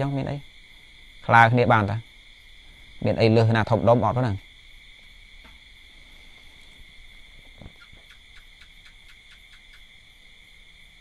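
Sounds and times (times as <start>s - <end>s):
light even ticks: 7.5s - 10.0s.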